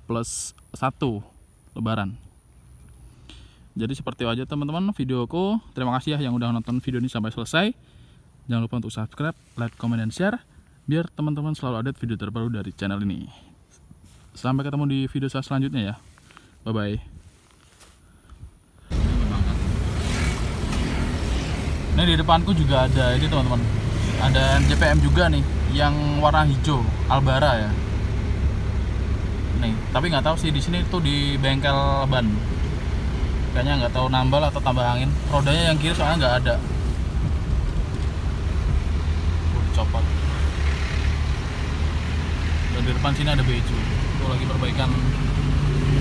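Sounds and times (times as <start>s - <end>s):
car engine and tyres rumbling: 17.2s - 46.0s
vehicle driving on road: 18.8s - 46.0s.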